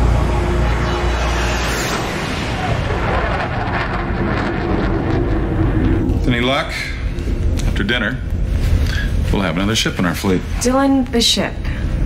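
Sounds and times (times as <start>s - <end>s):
deep rumbling drone: 0.0s - 10.7s.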